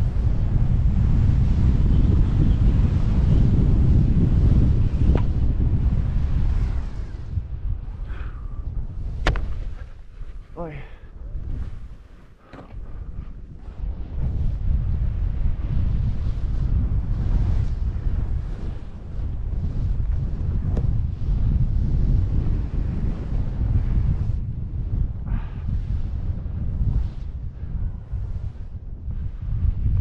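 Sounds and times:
wind rushing over microphone: 0.0s - 30.0s.

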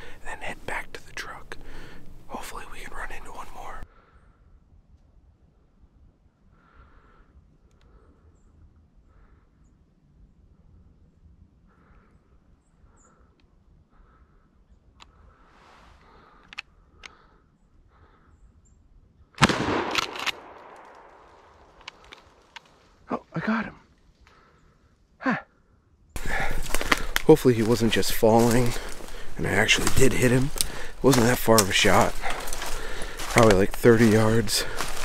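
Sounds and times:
shotgun shot echoing: 19.4s - 21.8s.

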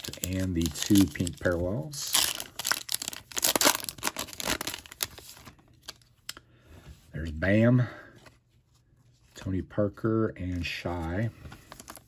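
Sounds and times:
foil wrapper tearing and crinkling: 0.0s - 6.0s.

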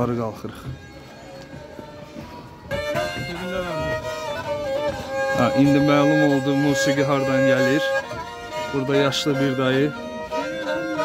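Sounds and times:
bowed fiddle folk tune: 0.0s - 11.0s.

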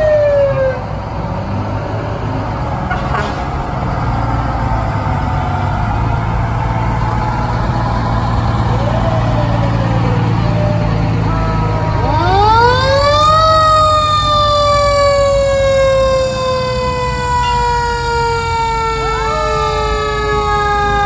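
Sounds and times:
fire truck engines rumbling: 0.0s - 21.0s
fire truck siren wailing: 0.0s - 21.0s.

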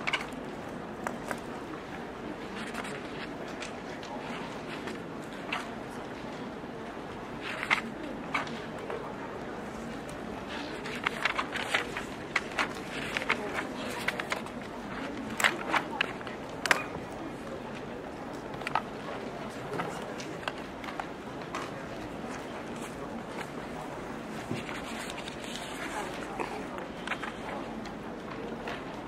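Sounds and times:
murmur of voices: 0.0s - 29.0s.

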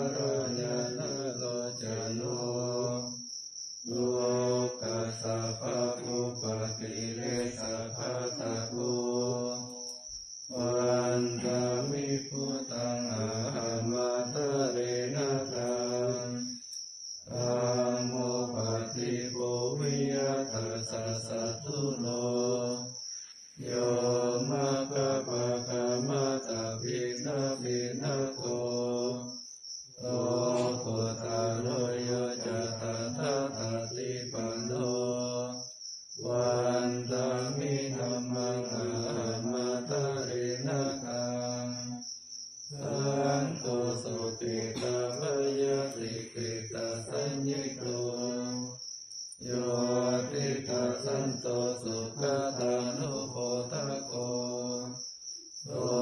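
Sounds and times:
voices chanting: 0.0s - 3.2s, 3.9s - 9.8s, 10.5s - 16.6s, 17.3s - 23.0s, 23.6s - 29.3s, 30.0s - 35.6s, 36.2s - 42.0s, 42.7s - 48.8s, 49.4s - 55.0s, 55.7s - 56.0s.

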